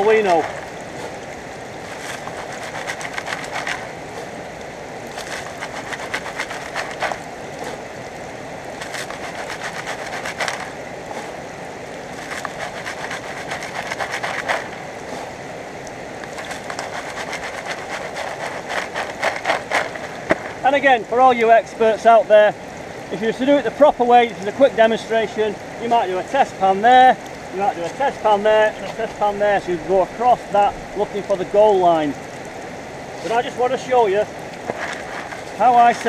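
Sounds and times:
river water rushing: 0:00.0 - 0:36.0
gravel rattling in plastic sieve: 0:01.9 - 0:03.9, 0:05.2 - 0:07.2, 0:08.8 - 0:10.7, 0:12.2 - 0:14.8, 0:16.3 - 0:20.3, 0:34.6 - 0:36.0.

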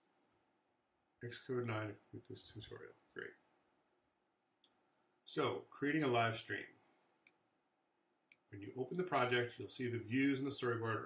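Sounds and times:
person speaking: 0:01.2 - 0:03.4.

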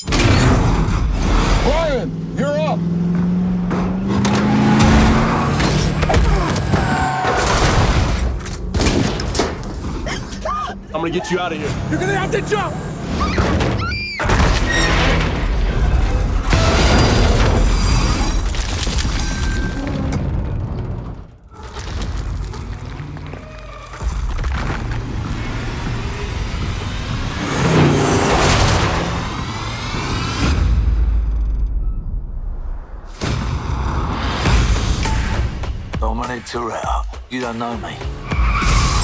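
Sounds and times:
dramatic music: 0:19.6 - 0:39.0.

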